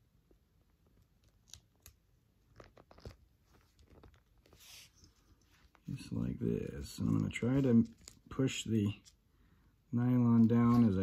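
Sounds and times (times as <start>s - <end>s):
tape ticks and crackles: 0.2s - 6.0s.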